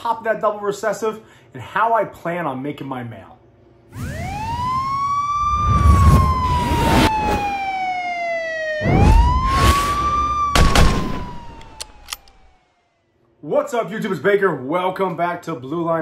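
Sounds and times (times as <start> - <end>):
synthetic siren-like tone: 3.9 - 13.0
deep hits: 8.8 - 11.8
whooshes: 8.8 - 11.8
clicks: 11.3 - 12.5.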